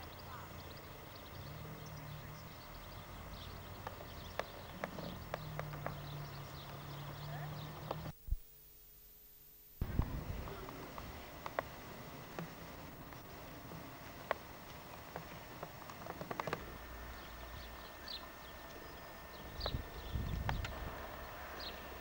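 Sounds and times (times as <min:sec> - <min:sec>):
sharp clicks: 0:00.0 - 0:08.1, 0:09.8 - 0:22.0
low steady hum: 0:00.0 - 0:22.0.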